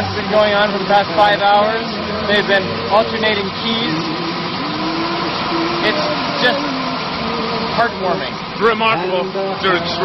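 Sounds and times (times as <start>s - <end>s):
vehicle engine idling: 0.0s - 10.0s.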